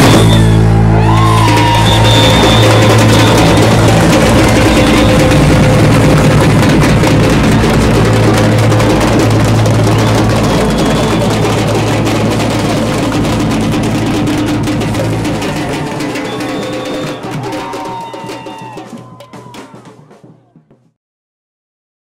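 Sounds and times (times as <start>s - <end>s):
drum corps playing percussion: 0.0s - 21.0s.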